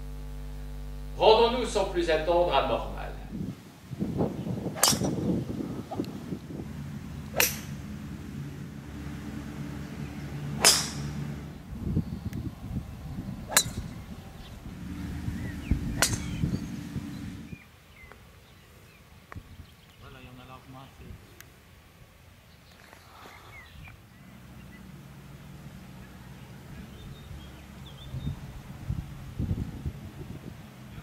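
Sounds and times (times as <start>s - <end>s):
wind rumble on microphone: 2.1s - 17.6s, 23.6s - 31.0s
golf club striking ball: 4.5s - 17.6s.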